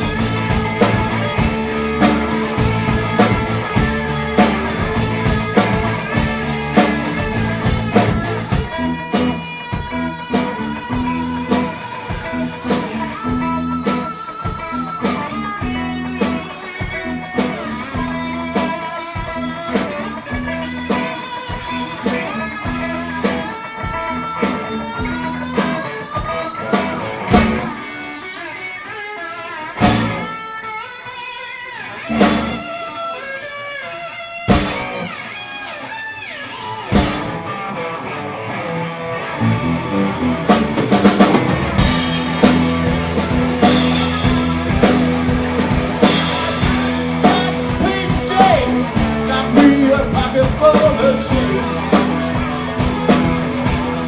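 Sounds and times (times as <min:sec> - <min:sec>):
band hitting loud stabs: 0:00.0 - 0:27.8, 0:29.8 - 0:30.3, 0:32.1 - 0:32.7, 0:34.5 - 0:35.1, 0:36.9 - 0:37.4, 0:40.4 - 0:54.0
bass: 0:00.0 - 0:28.0, 0:29.8 - 0:30.4, 0:32.0 - 0:32.9, 0:34.5 - 0:35.2, 0:36.8 - 0:37.6, 0:38.5 - 0:54.0
drums: 0:00.0 - 0:54.0
electric guitar lead: 0:00.0 - 0:54.0.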